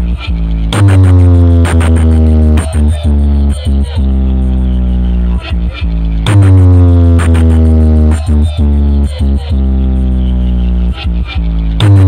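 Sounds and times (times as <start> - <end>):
loud electronic music with heavy bass: 0.0 - 12.0.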